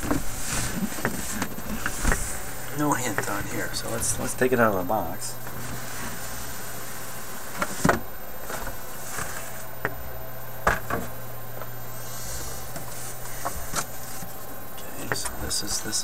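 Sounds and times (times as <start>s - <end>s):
rustling and scraping: 0.0s - 4.3s, 5.4s - 9.7s, 11.9s - 14.5s
steady low hum: 0.0s - 16.0s.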